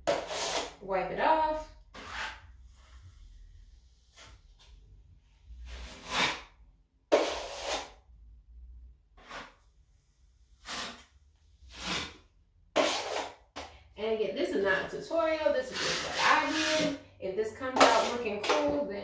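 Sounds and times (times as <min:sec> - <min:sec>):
putty knife scraping a wall: 0:00.0 - 0:00.8, 0:01.9 - 0:03.0, 0:05.6 - 0:06.5, 0:07.1 - 0:08.0, 0:09.2 - 0:09.7, 0:10.6 - 0:13.7, 0:15.6 - 0:17.0, 0:17.7 - 0:18.8.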